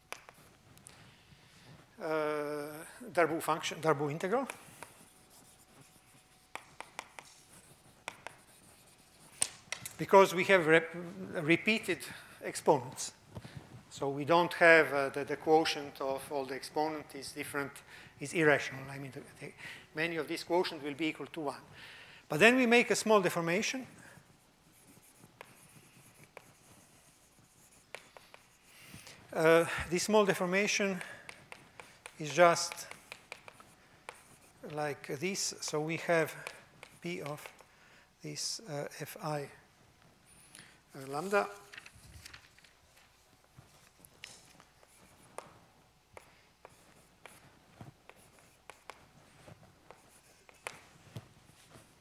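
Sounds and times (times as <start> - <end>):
chalk tapping on blackboard: 0.1 - 0.6, 3.6 - 10.2, 24.2 - 29.2, 30.0 - 37.7, 43.1 - 52.0
chalk scratching on blackboard: 2.3 - 10.7, 22.4 - 37.7, 40.3 - 41.7, 43.0 - 52.0.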